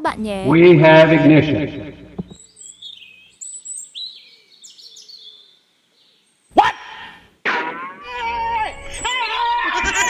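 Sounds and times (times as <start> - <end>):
birds chirping: 0.3 - 7.3
loud short cry: 6.5 - 10.0.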